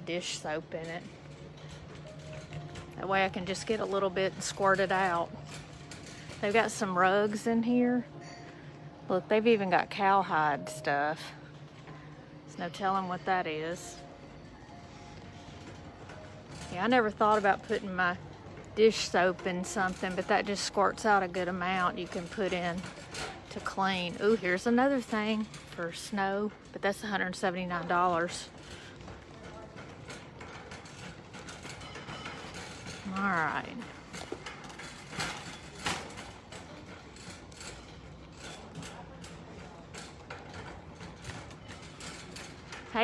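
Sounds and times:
shopping cart rattling: 0.0s - 11.9s, 12.6s - 43.0s
faint background music: 0.0s - 43.0s.

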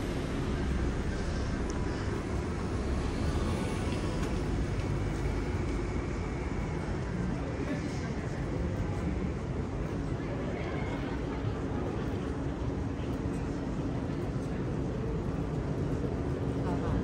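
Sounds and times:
cars driving past: 0.0s - 7.2s
faint voices of passers-by: 0.0s - 17.0s.

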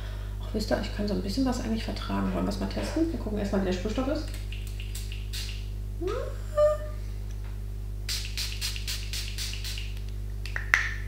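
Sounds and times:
low electrical hum: 0.0s - 11.0s
spray bottle misting: 4.4s - 5.7s, 8.1s - 10.1s.

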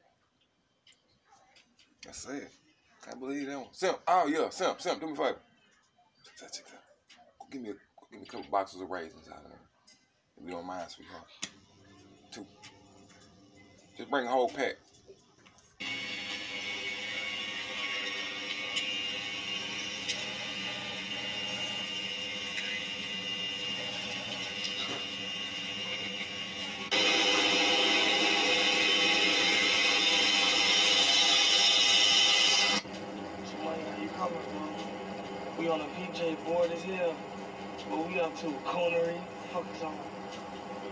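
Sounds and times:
voices from a screen: 1.2s - 15.1s, 33.4s - 34.9s, 35.6s - 37.2s, 37.8s - 40.1s.

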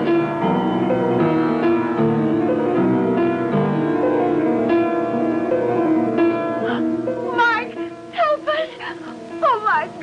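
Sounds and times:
instrumental music: 0.0s - 10.0s.

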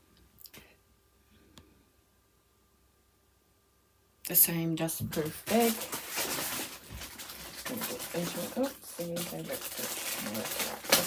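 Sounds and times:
plastic sleeve crinkling: 5.0s - 11.0s.

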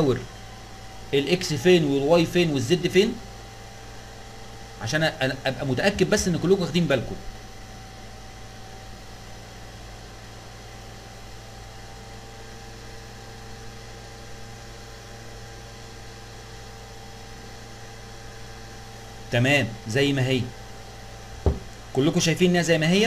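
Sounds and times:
background hum and hiss: 0.0s - 23.0s.

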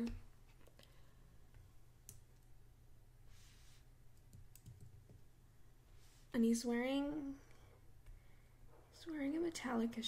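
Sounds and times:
soft hiss: 0.0s - 4.4s, 5.2s - 10.0s.

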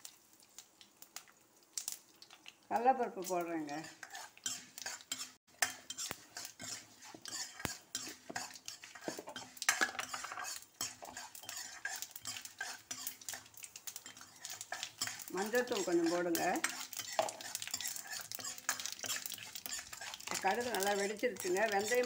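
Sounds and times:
hot oil sizzling: 0.0s - 22.0s
metal ladle scraping a pan: 3.6s - 22.0s.

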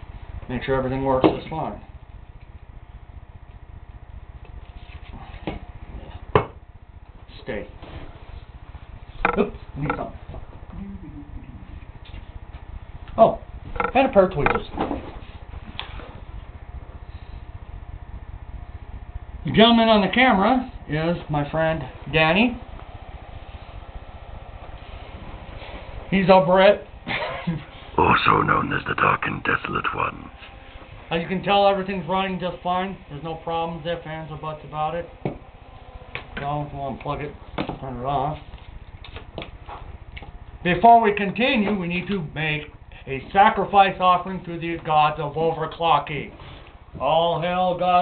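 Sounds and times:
low hum: 28.0s - 30.4s.

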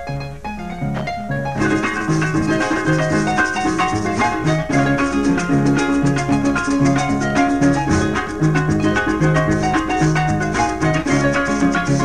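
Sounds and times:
harp plucked melody: 0.0s - 12.0s
maraca rattle: 0.0s - 12.0s.

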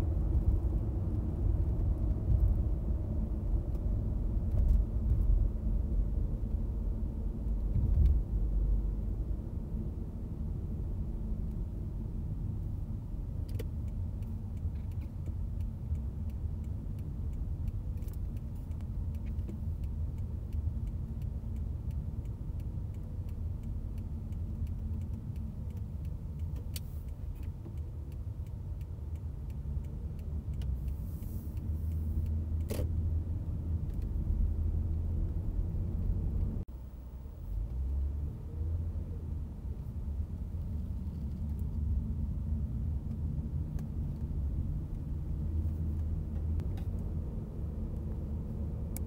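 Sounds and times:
car engine and road rumble: 0.0s - 49.0s.

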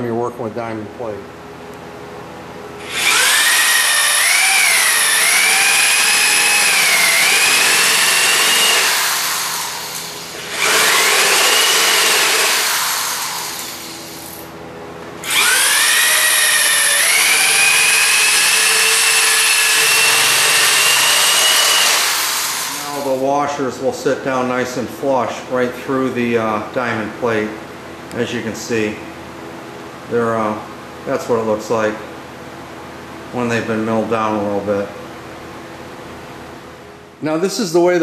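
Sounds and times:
electric drill milling metal: 2.8s - 14.4s, 15.2s - 23.2s.

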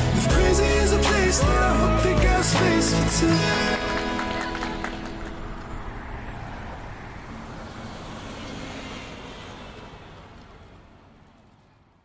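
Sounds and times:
steady rushing noise: 3.3s - 10.1s.

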